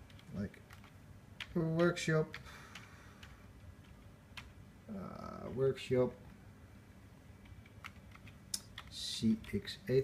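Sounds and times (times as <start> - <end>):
computer keyboard key clicks: 7.4 - 9.6.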